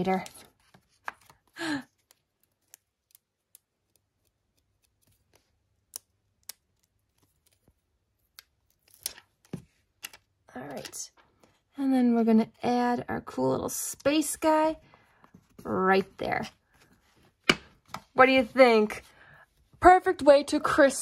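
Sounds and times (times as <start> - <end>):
sticker rustling: 0.0 - 11.6.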